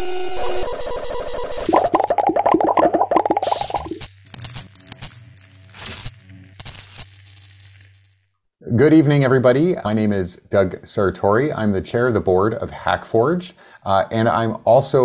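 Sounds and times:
stuttering pulsing electronic tones: 0:00.1 - 0:04.1
bursts of static: 0:00.2 - 0:08.3.

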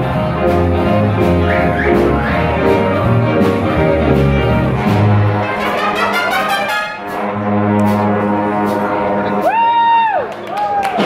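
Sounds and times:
brass section: 0:00.0 - 0:09.6
big band playing swing: 0:00.0 - 0:11.0.

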